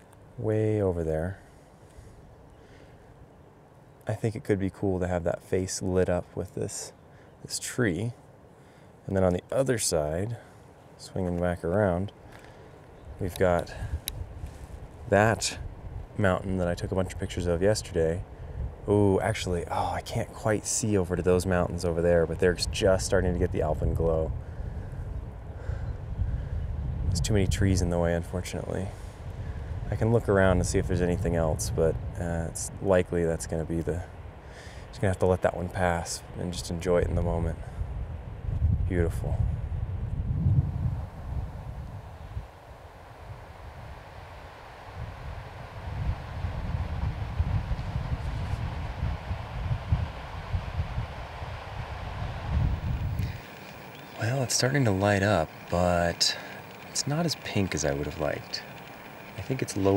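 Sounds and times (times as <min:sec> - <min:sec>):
wind buffeting microphone: 0:22.3 - 0:33.6, 0:36.6 - 0:42.5, 0:44.9 - 0:59.9.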